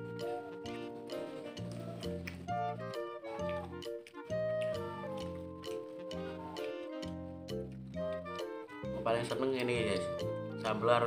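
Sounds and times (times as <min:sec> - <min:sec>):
background music with bass: 0:00.0 - 0:11.0.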